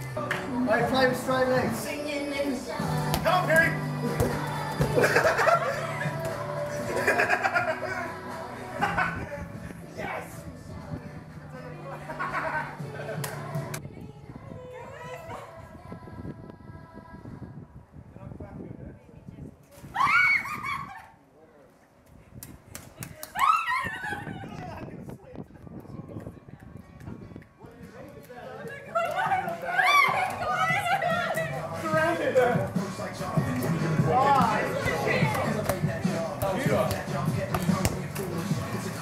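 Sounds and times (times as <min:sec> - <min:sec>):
background music: 0:00.0 - 0:18.0, 0:25.6 - 0:39.0
people shouting whoops: 0:19.9 - 0:21.1, 0:23.3 - 0:24.6, 0:29.1 - 0:31.2.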